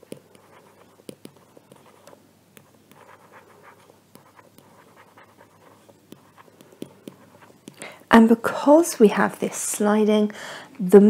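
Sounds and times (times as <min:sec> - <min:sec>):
light taps: 0:00.0 - 0:03.1
stylus scratching while writing: 0:00.0 - 0:07.9.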